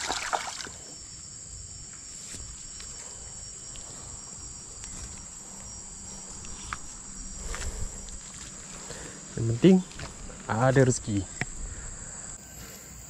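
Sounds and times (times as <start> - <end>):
high-pitched insect drone: 0.0 - 13.0.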